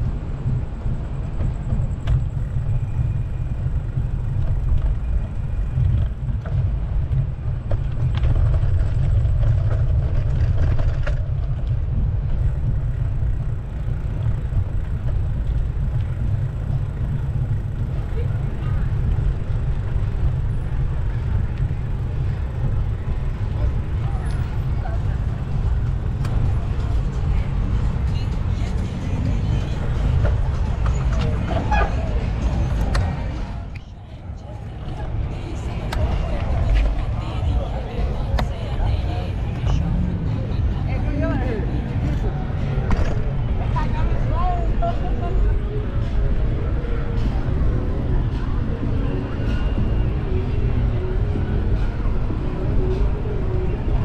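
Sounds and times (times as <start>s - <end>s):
faint traffic: 0.0s - 54.0s.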